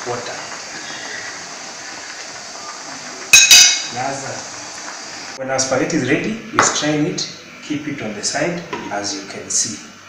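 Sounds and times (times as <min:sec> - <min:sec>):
water boiling in a pan: 0:00.0 - 0:10.0
metal utensil striking pan: 0:03.3 - 0:04.0.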